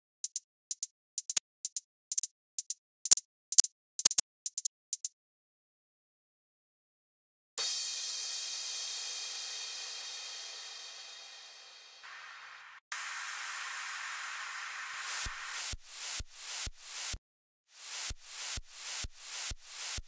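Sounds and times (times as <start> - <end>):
white-noise sweep: 7.6 - 20.0.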